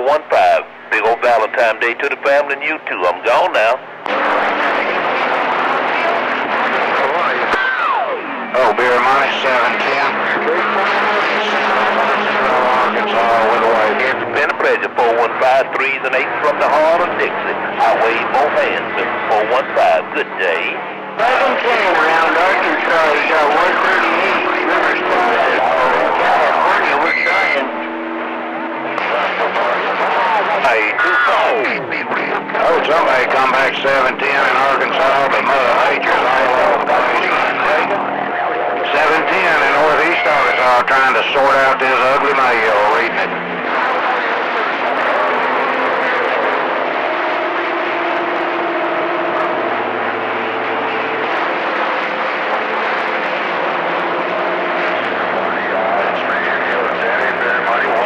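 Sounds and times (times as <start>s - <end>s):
faint garbled radio voices: 0.0s - 58.0s
radio static: 0.0s - 58.0s
steady high tone: 2.6s - 58.0s.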